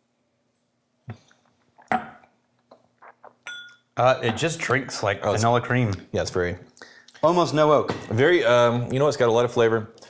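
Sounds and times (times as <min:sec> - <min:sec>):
faint glass handling sounds: 0:01.2 - 0:04.7
light glass clink: 0:03.4 - 0:04.5.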